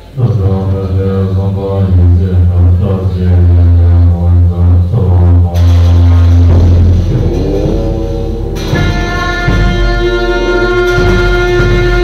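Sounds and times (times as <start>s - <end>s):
deep steady drone: 0.0s - 12.0s
ritual music instruments: 0.0s - 12.0s.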